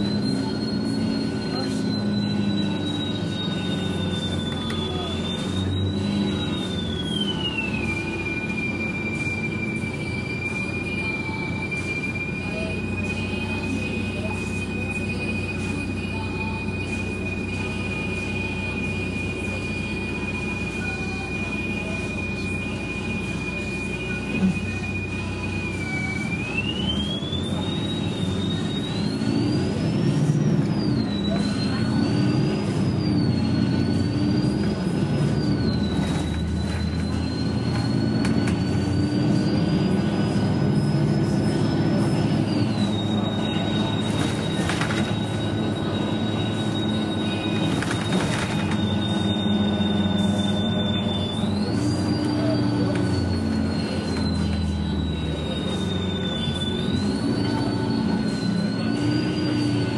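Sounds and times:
bus engine with high whine: 0:00.0 - 0:59.9.

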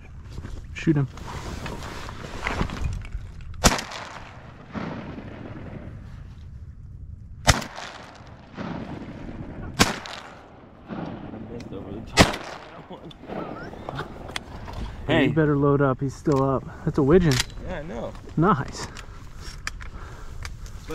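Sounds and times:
shotgun shots: 0:03.6 - 0:05.8, 0:07.4 - 0:14.2.

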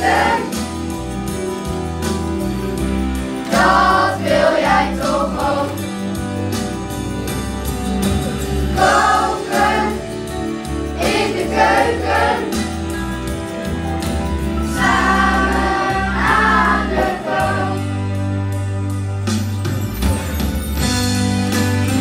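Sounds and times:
backing music with bass line: 0:00.0 - 0:22.0
children singing in chorus: 0:14.8 - 0:17.9.

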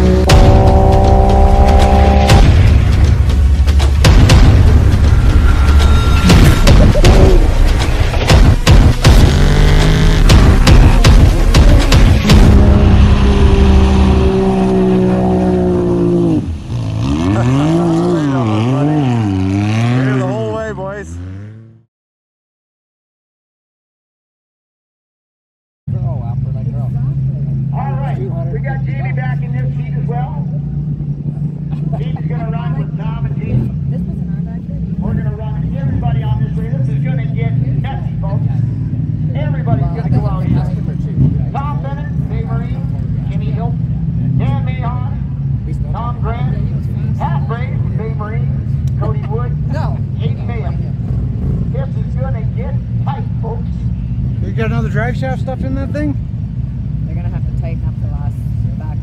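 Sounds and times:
engines idling: 0:00.0 - 0:21.4, 0:25.9 - 0:59.0
people talking: 0:10.5 - 0:15.4, 0:17.2 - 0:21.2, 0:25.9 - 0:30.6, 0:31.7 - 0:51.0, 0:51.7 - 0:56.2, 0:57.1 - 0:59.0.

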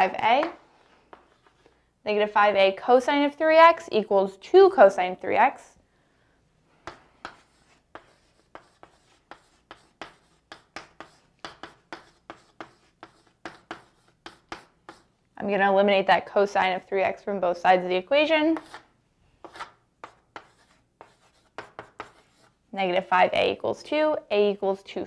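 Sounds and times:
pen scratching on paper: 0:06.9 - 0:15.1, 0:18.6 - 0:22.5.

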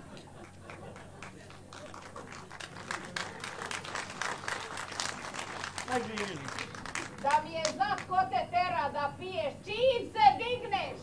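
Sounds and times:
audience clapping: 0:00.0 - 0:08.2.

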